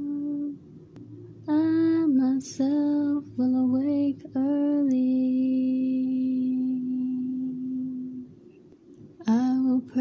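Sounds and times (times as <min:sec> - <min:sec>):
woman singing unaccompanied: 0:00.0 - 0:00.7, 0:01.4 - 0:08.4, 0:09.2 - 0:10.0.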